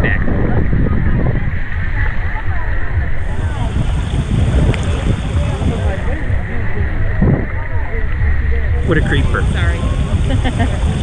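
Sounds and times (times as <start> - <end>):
faint chatter of people: 0.0 - 11.0
wind buffeting microphone: 0.0 - 11.0.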